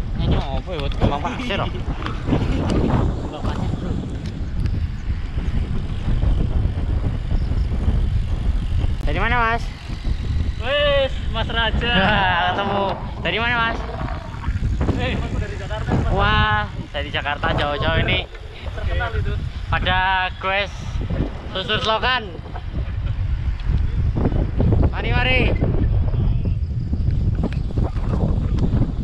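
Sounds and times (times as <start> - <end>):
wind buffeting microphone: 0.0 - 29.0
riders calling out: 9.1 - 23.4.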